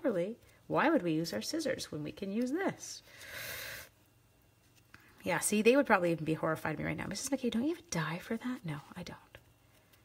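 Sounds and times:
woman breathing out: 3.1s - 3.9s.

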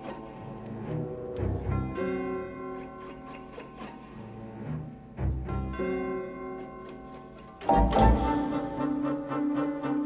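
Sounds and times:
held string chords: 4.1s - 10.0s.

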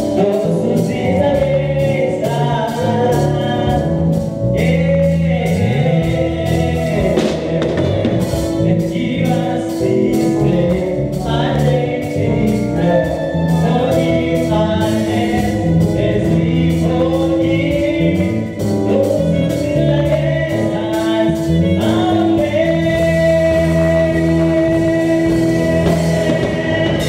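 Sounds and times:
backing singers: 0.0s - 27.0s
keyboard: 0.0s - 27.0s
man singing lead: 0.0s - 27.0s
steady drum beat: 0.0s - 27.0s.

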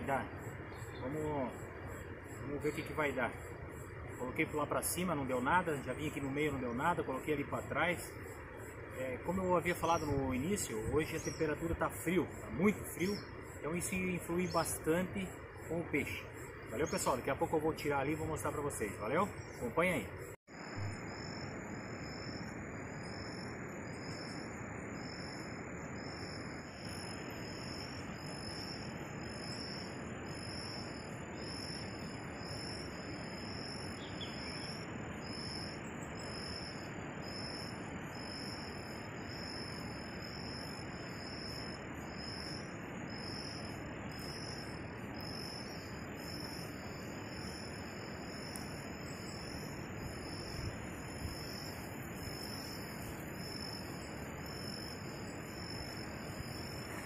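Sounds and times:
cricket chirping: 0.0s - 57.0s
high insect trill: 0.0s - 57.0s
steady hiss: 0.0s - 57.0s.

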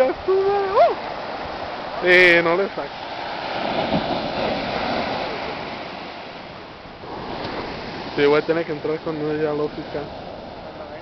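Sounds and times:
ocean surf breaking on beach: 0.0s - 11.0s.

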